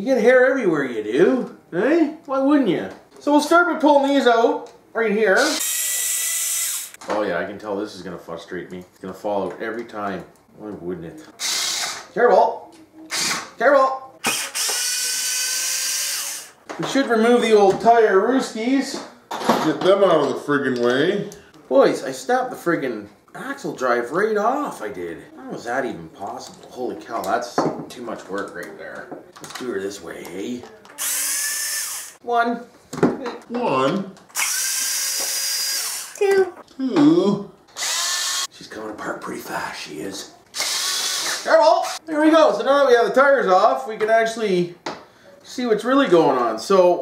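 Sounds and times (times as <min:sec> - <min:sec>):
cordless drill motor whine: 0:05.5 - 0:07.0, 0:14.2 - 0:16.5, 0:31.0 - 0:32.2, 0:34.4 - 0:36.2, 0:37.8 - 0:38.5, 0:40.6 - 0:41.4.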